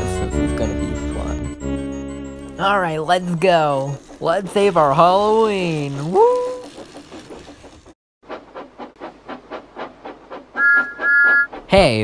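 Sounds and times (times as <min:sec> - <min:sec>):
steam locomotive chuffing: 0:02.6 - 0:12.0
two-note steam whistle: 0:10.6 - 0:11.5.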